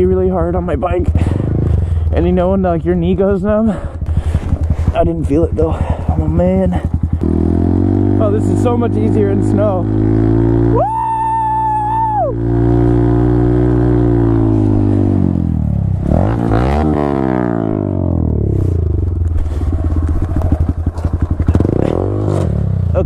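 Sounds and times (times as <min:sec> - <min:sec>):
motorcycle engine running: 0:00.0 - 0:23.0.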